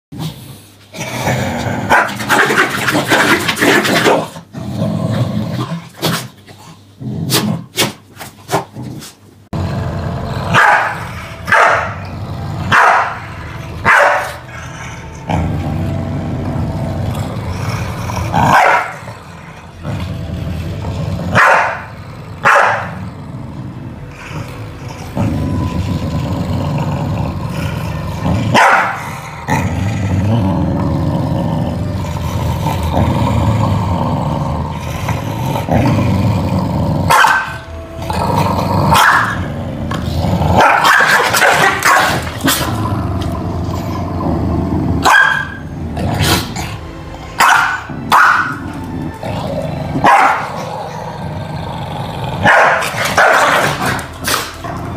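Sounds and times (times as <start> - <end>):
dogs growling: 0.1 - 7.8, 8.5 - 54.9
dogs barking sharply: 12.7 - 13.2, 13.8 - 14.4, 21.4 - 21.8, 22.4 - 22.9, 28.5 - 29.0, 40.6 - 42.2, 45.0 - 45.6, 47.4 - 48.5, 52.5 - 54.5.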